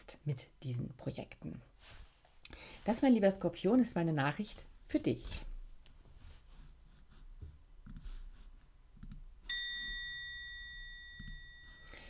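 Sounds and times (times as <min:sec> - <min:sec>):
bell-like chime: 0:09.5 - 0:12.0.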